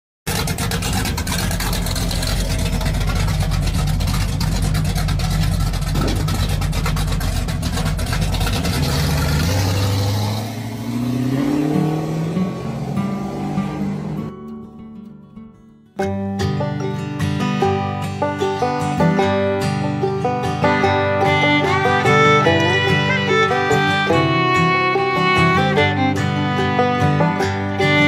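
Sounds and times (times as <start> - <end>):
car engine revving with crackle: 0.3 - 14.7.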